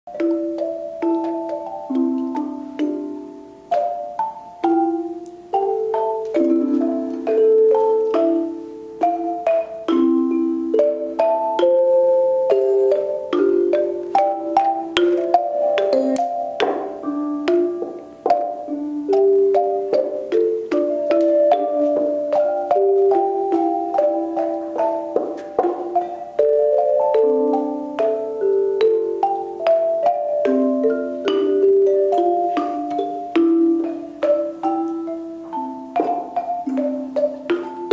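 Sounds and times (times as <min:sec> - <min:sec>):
xylophones and metallophones playing: 0:00.1 - 0:37.9.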